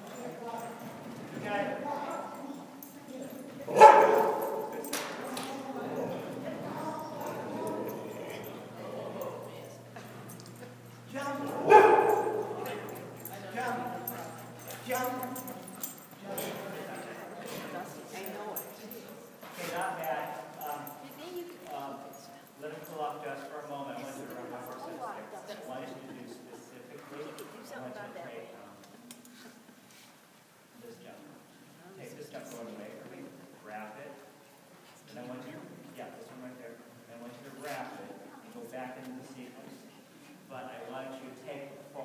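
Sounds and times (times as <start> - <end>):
dog barking: 3.7 - 4.8, 11.5 - 13.2
soft voices: 4.7 - 19.9.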